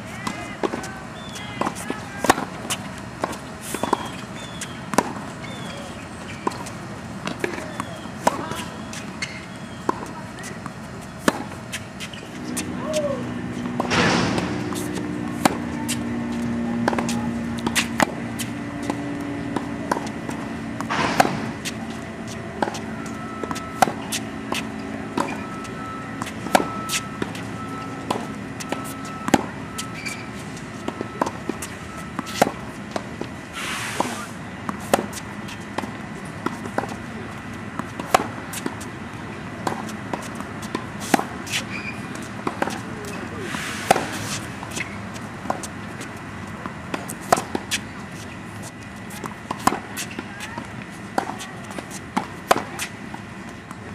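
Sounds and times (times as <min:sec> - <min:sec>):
shoes scraping on court: 0:00.0 - 0:53.9
tennis balls struck by rackets: 0:00.0 - 0:53.9
tennis balls bouncing on hard court: 0:00.1 - 0:33.4, 0:34.0 - 0:53.9.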